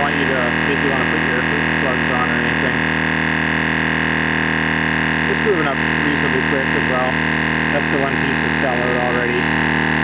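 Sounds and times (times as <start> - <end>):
tire inflator running: 0.0 - 10.0.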